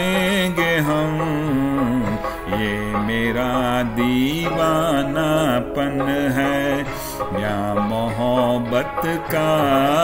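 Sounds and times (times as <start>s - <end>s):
man singing slow song: 0.0s - 10.0s
musical backing track: 0.0s - 10.0s.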